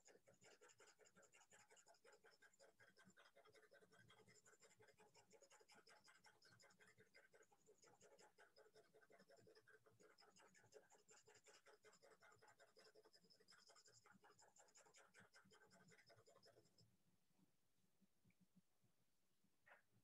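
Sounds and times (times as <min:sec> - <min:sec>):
pencil scratching on paper: 0:00.0 - 0:16.9.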